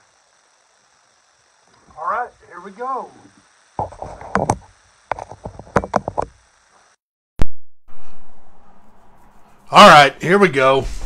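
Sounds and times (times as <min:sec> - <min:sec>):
handling knocks and clicks: 0:03.9 - 0:06.4.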